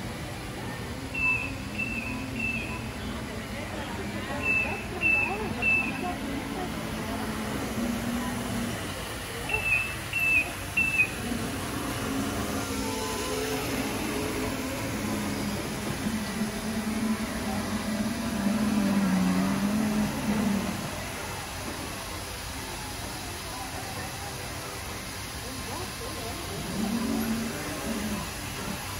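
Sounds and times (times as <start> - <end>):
store background noise: 0.0 - 28.9
floor scrubber motors humming: 0.6 - 22.0.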